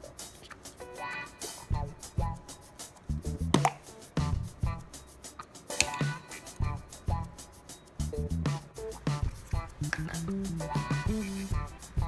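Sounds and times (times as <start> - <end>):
background music with punchy beat: 0.0 - 12.0.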